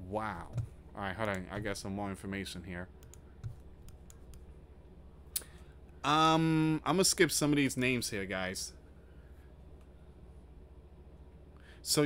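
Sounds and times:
low steady hum: 0.0s - 12.0s
computer mouse clicks: 3.0s - 4.5s.

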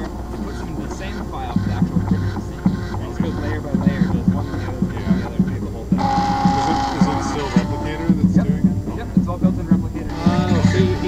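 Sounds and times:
loud hiss with steady whine: 0.0s - 11.0s
stepper motors buzzing in pulses: 0.0s - 11.0s.

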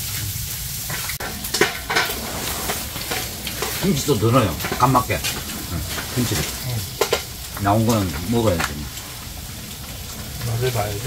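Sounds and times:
meat sizzling in a grill pan: 0.0s - 11.0s.

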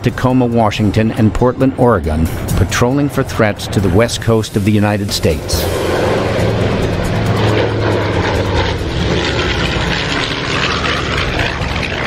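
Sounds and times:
propeller plane engines droning: 0.0s - 12.0s.

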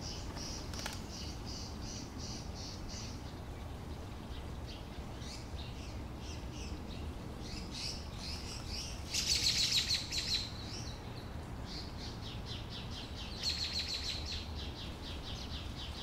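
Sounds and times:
sparrows chirping: 0.0s - 16.0s.

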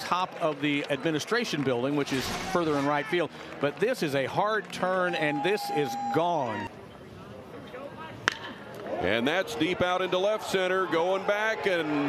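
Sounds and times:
faint ballpark ambience: 0.0s - 12.0s.

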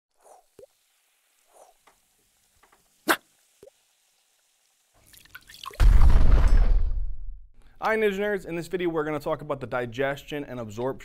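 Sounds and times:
rising fizz: 0.1s - 5.8s
cartoon drips and plops: 0.2s - 0.8s, 5.0s - 5.8s
loud deep explosion: 5.8s - 7.4s.

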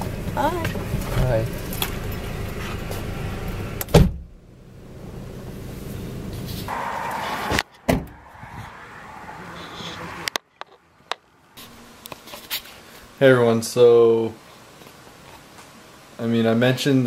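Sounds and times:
loud thump: 3.9s - 4.3s, 7.4s - 8.2s
quiet hiss: 10.8s - 17.0s.

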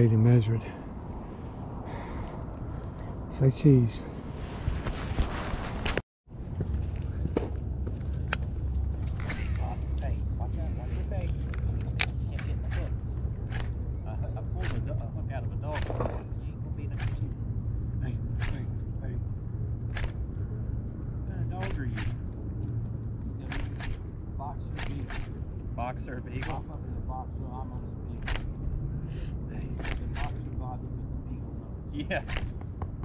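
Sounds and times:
low steady rumble: 0.0s - 33.0s.

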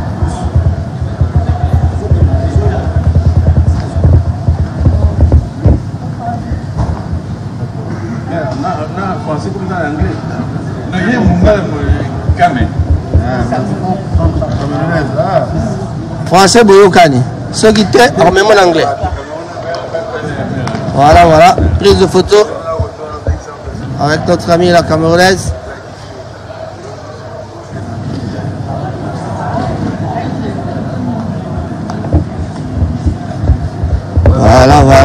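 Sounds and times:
chatter of busy hall: 0.0s - 35.0s
people talking: 0.0s - 35.0s.

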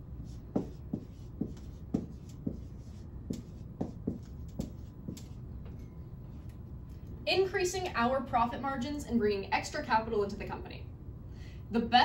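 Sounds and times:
marker squeaking on whiteboard: 0.3s - 5.4s.

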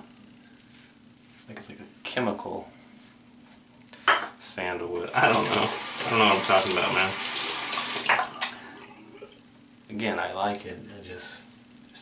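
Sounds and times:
sink tap running: 5.1s - 8.6s.

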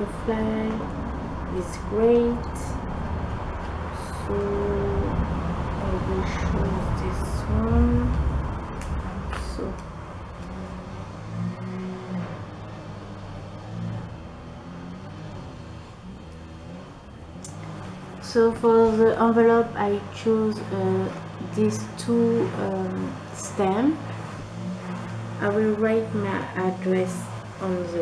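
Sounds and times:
soft wordless humming: 0.0s - 28.0s
vehicle low rumble: 0.0s - 28.0s.

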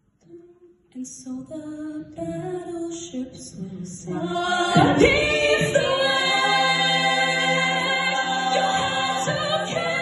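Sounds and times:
a cappella group singing: 2.1s - 10.0s.

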